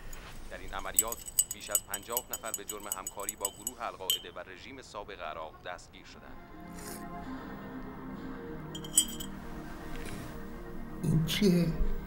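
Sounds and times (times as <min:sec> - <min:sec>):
teaspoon clinking on glass: 0:00.0 - 0:04.4, 0:08.8 - 0:09.3
soft background music: 0:00.0 - 0:12.0.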